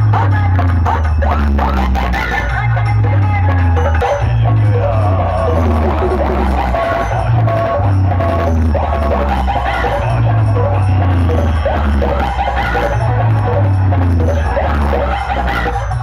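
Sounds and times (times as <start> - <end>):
loud bass-heavy dance music: 0.0 - 16.0.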